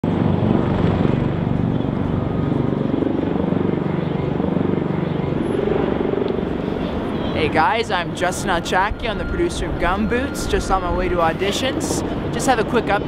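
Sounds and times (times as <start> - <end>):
loud low rumble with flutter: 0.0 - 11.4.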